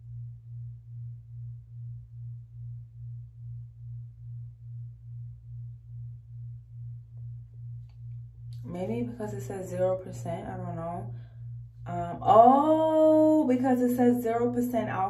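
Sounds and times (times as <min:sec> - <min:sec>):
low throbbing hum: 0:00.0 - 0:15.0.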